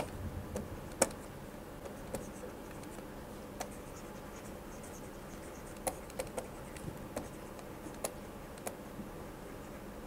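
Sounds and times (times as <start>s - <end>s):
stylus tapping and scratching on screen: 0.0s - 8.8s
faint room noise: 0.0s - 10.0s.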